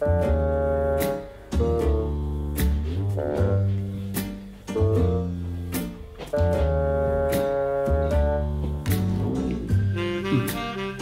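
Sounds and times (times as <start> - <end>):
jazz with double bass and piano: 0.0 - 11.0.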